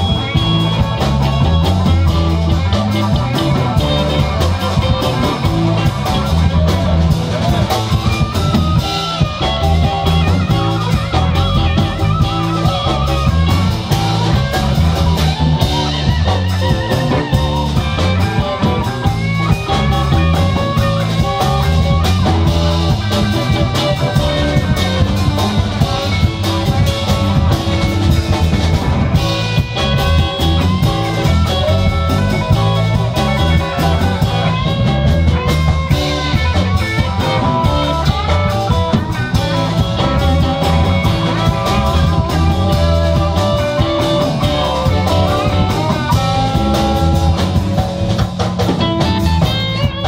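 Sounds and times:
blues band playing: 0:00.0 - 0:50.0
lead guitar with vibrato bends: 0:00.0 - 0:50.0.

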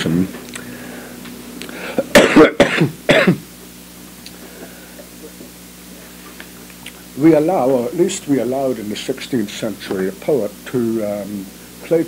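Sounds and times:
steady low hum: 0:00.0 - 0:12.0
person coughing: 0:01.8 - 0:03.5.

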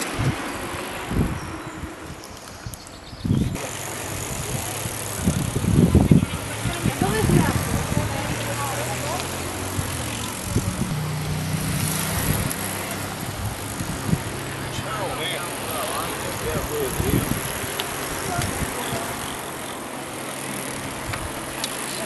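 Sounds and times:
bicycles rolling on pavement: 0:00.0 - 0:22.0
cyclists chattering: 0:00.0 - 0:22.0.

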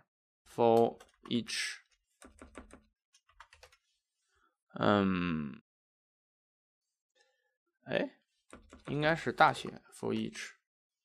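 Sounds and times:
computer keyboard typing: 0:00.8 - 0:01.4, 0:02.2 - 0:03.8, 0:08.5 - 0:09.1.

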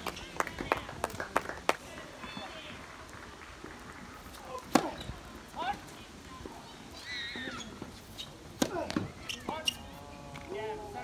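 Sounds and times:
tennis ball hits: 0:04.6 - 0:05.1.

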